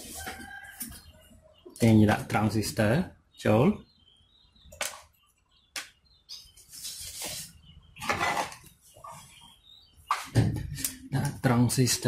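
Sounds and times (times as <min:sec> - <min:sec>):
faint bird chirps: 0:00.2 - 0:12.0
circuit board rustling and scraping: 0:06.5 - 0:09.4.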